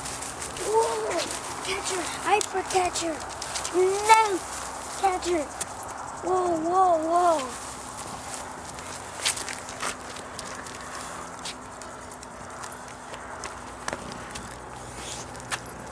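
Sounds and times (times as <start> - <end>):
dog claws clicking on concrete: 1.3 - 4.4, 8.5 - 15.9.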